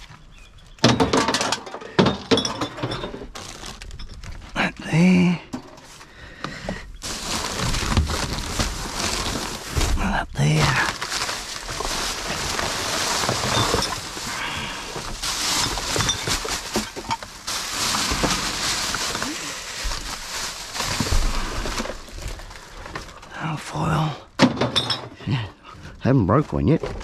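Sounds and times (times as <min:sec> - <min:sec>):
plastic bags rustling and crinkling: 0:02.0 - 0:04.6, 0:06.8 - 0:23.3.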